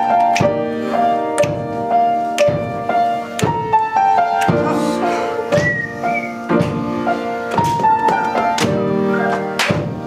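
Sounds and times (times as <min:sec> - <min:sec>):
piano chords: 0:00.0 - 0:10.0
two-note whistle: 0:05.5 - 0:06.5, 0:09.0 - 0:09.6.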